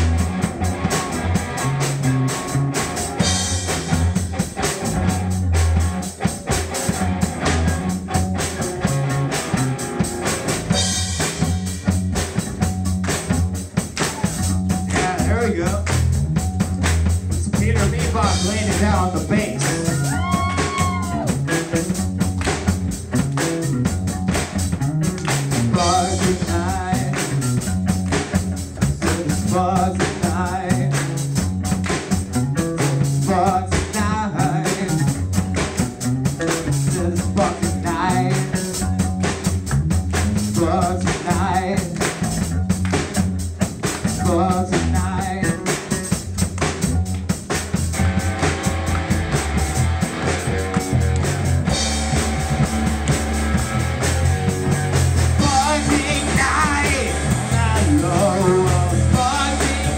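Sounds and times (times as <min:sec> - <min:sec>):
drum kit: 0:00.0 - 0:59.9
electric bass line: 0:00.0 - 0:59.9
electric guitar: 0:00.0 - 0:59.9
rock band playing: 0:00.0 - 0:59.9.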